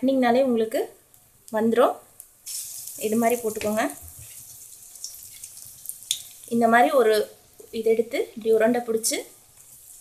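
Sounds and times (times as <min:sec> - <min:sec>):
fritters sizzling in hot oil: 0:01.2 - 0:10.0
faint oil crackles: 0:02.5 - 0:06.5.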